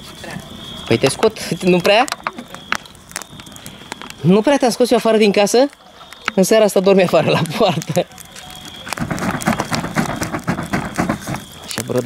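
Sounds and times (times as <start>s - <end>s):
fire crackling and popping: 0.0s - 12.0s.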